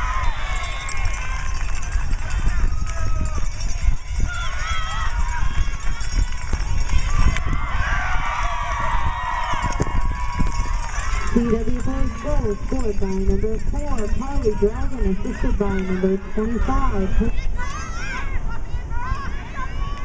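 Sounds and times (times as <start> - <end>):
people shouting and cheering: 0.0 - 20.0.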